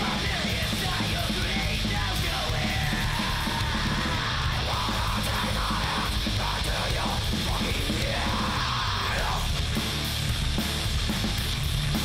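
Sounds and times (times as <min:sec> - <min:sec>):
yelled vocals: 0:00.0 - 0:09.7
punk band playing: 0:00.0 - 0:12.0.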